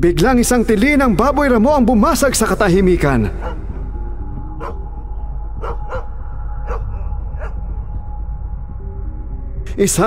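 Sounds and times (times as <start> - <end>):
low musical drone: 0.0 - 10.0
dogs barking: 3.4 - 3.7, 4.6 - 5.0, 5.6 - 7.7.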